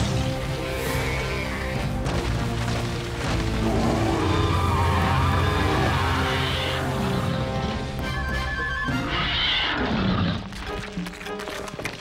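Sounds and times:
dramatic cartoon music: 0.0 - 12.0.

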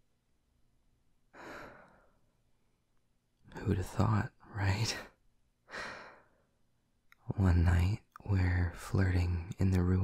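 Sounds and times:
man exhaling breathily: 1.4 - 2.2.

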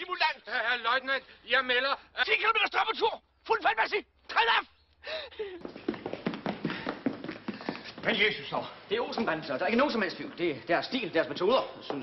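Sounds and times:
footsteps on tiled floor: 5.6 - 10.5, 11.1 - 12.0.

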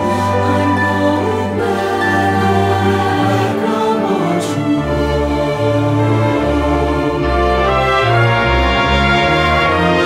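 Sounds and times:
choir singing sustained chords: 0.0 - 10.0
instrumental accompaniment: 0.0 - 10.0.

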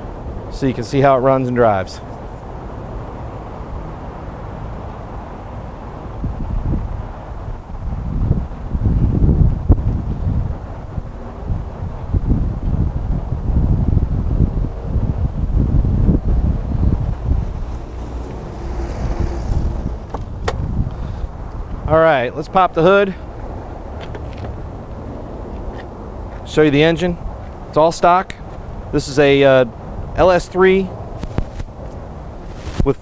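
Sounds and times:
wind buffeting microphone: 2.6 - 27.7.

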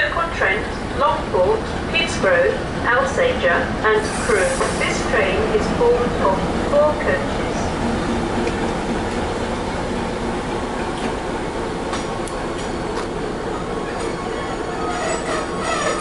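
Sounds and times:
train wheels rumbling: 0.1 - 16.0
wheel squeal: 14.4 - 16.0.

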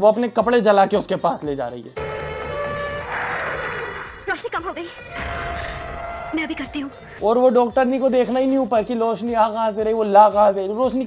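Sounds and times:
dramatic film score with held notes: 2.0 - 9.0.

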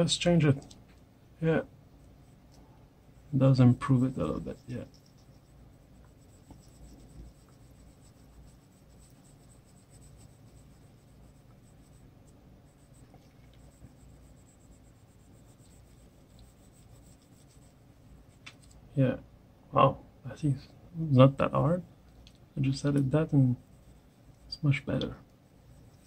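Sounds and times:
colored pencil scratching on paper: 3.2 - 18.7, 22.6 - 26.0.

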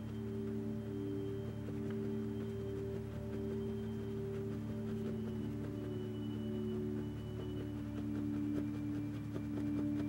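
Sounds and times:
soft ambient music: 0.0 - 10.0.

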